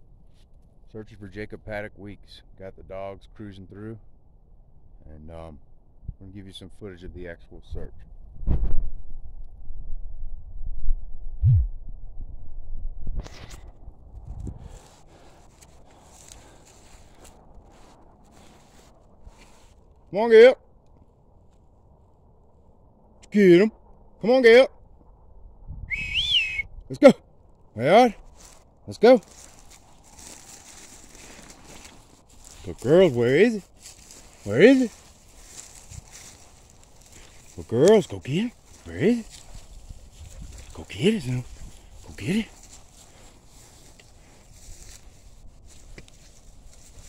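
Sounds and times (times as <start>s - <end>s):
low steady rumble: 0.0s - 47.0s
footsteps crunching on snow: 14.2s - 19.9s, 28.2s - 47.0s
short whistle: 25.8s - 26.8s
low rustling: 28.1s - 47.0s.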